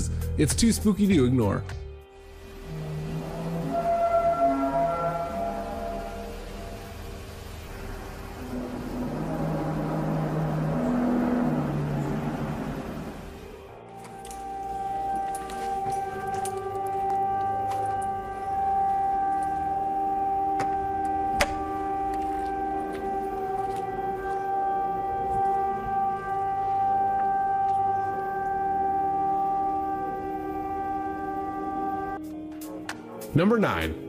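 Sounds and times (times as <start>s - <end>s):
trumpet-like drone: 2.1s - 34.0s.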